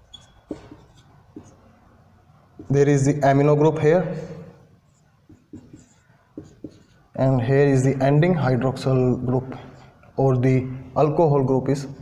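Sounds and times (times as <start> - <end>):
marker pen scratching on board: 0.0 - 1.7, 2.6 - 2.8, 4.8 - 7.2.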